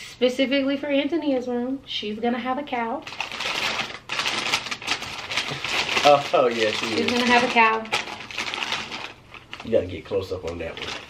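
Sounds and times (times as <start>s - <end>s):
wrapping rustling and crinkling: 3.0s - 11.0s.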